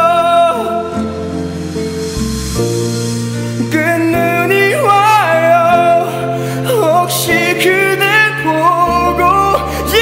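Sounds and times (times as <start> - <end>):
man singing a slow ballad: 0.0 - 1.9, 3.5 - 10.0
instrumental backing track: 0.0 - 10.0.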